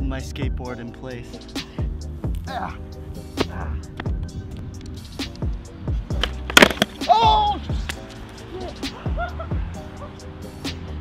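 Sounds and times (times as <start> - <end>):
music with deep beat: 0.0 - 11.0
skateboard clacking on concrete: 6.1 - 7.0.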